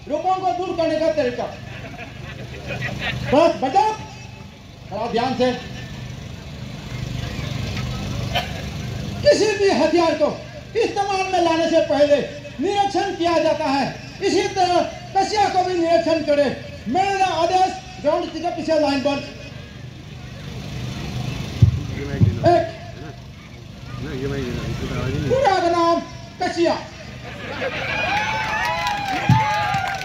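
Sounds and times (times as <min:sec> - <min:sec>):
man shouting: 0:00.0 - 0:01.4, 0:03.3 - 0:04.4, 0:09.2 - 0:19.3, 0:22.4 - 0:23.0, 0:25.2 - 0:27.0
low pulsing engine rumble: 0:00.0 - 0:30.0
outdoor background noise: 0:00.0 - 0:30.0.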